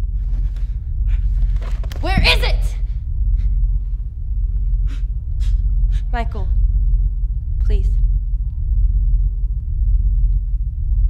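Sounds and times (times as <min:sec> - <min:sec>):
faint hum: 0:00.0 - 0:11.0
low rumble: 0:00.0 - 0:11.0.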